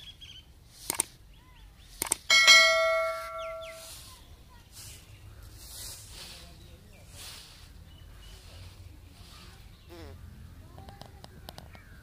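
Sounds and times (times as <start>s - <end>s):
mouse clicks: 0.9s - 1.1s
bright bell ding: 2.3s - 3.9s.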